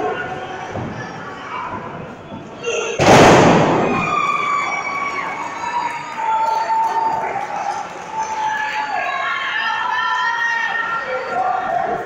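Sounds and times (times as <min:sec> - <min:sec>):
crowd shouting: 0:02.8 - 0:12.0.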